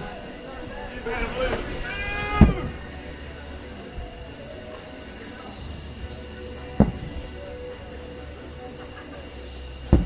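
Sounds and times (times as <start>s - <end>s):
wavering meow-like call: 1.1s - 2.9s
firework bursting with deep boom: 5.6s - 7.4s.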